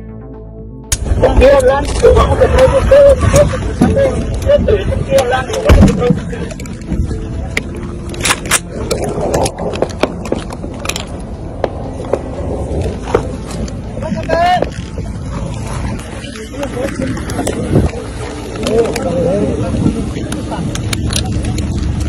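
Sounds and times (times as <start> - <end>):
muffled voices: 1.0 - 22.0
vehicle low rumble: 1.0 - 22.0
knocks and scrapes: 8.4 - 18.9.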